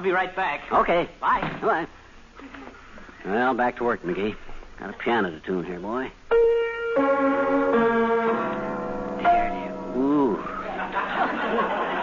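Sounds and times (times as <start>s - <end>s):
piano notes ringing: 6.3s - 11.7s.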